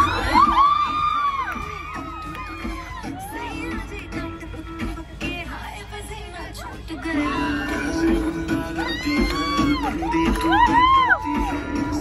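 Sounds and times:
girls whooping and cheering: 0.0s - 3.9s, 6.6s - 8.0s, 8.7s - 11.7s
dance song playing loudly: 0.0s - 12.0s.

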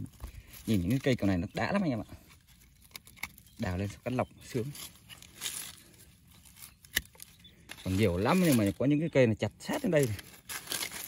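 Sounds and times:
dry leaves and soil rustling: 0.0s - 11.0s
pruning shears snipping stem: 6.4s - 8.7s.

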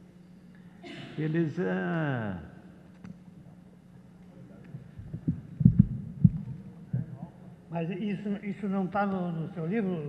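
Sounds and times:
low hum: 4.8s - 7.7s
microphone handling thumps: 5.0s - 7.2s.

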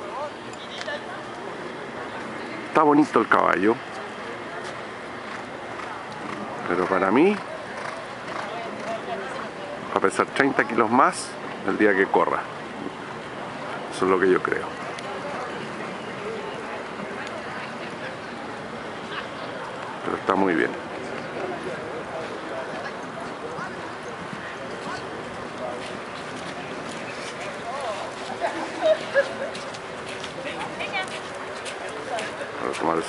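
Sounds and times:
background chatter: 0.0s - 33.0s
distant murmur of voices: 0.0s - 33.0s
outdoor background noise: 0.0s - 33.0s.

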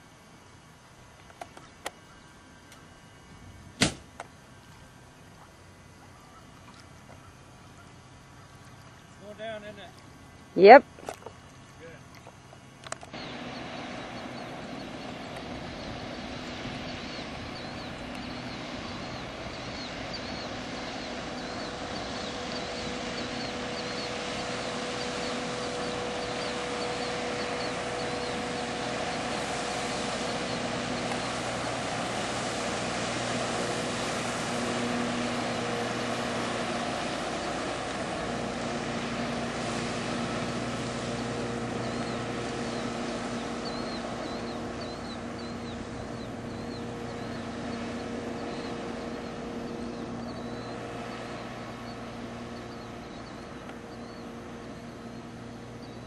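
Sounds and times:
motorboat engine running: 0.0s - 56.0s
hull rushing through water: 2.0s - 56.0s.

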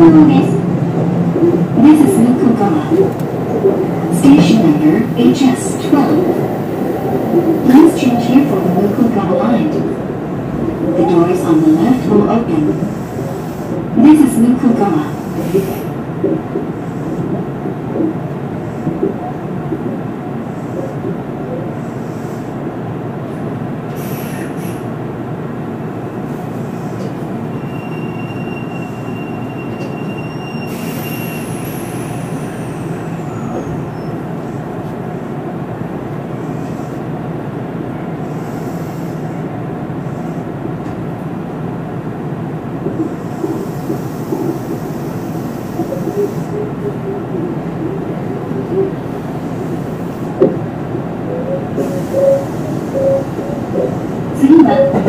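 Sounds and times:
train wheels and motors rumbling: 0.0s - 28.3s, 29.1s - 55.0s
person speaking: 1.4s - 9.9s
high wheel squeal: 27.5s - 34.2s.

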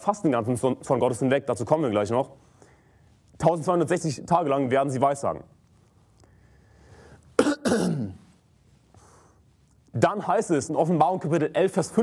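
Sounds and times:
man coughing: 7.4s - 8.2s.

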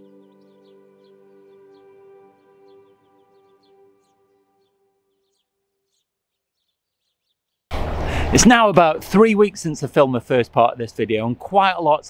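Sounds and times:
soft ambient music chord: 0.0s - 5.2s.

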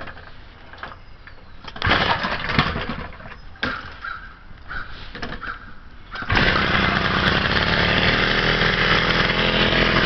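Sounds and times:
moped engine starting: 1.8s - 3.2s, 6.2s - 10.0s.

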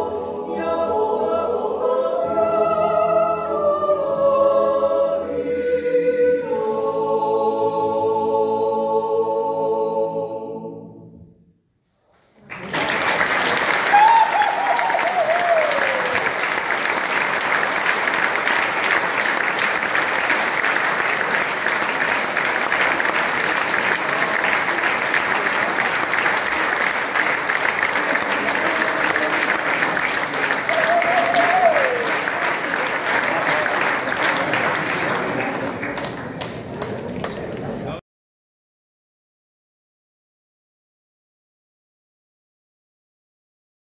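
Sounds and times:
audience applauding: 12.4s - 38.0s.

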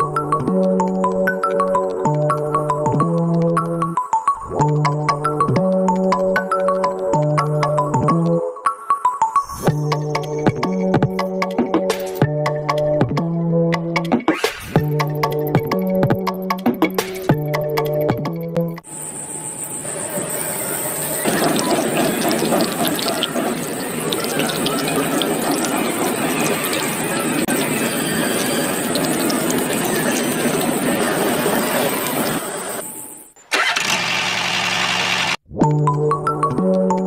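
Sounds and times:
water pump whining: 20.0s - 35.4s
water splashing into soil: 21.2s - 30.9s.

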